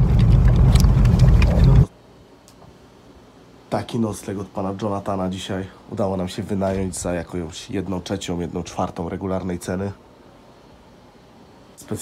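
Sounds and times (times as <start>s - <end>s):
loud low rumbling: 0.0s - 1.9s.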